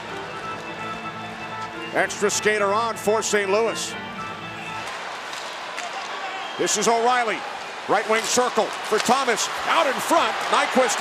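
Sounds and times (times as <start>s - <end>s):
music with held notes: 0.0s - 5.4s.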